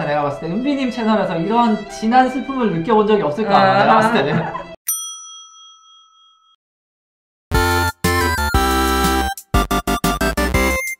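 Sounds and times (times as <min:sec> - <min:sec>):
bell-like ding chime: 0:04.9 - 0:06.6.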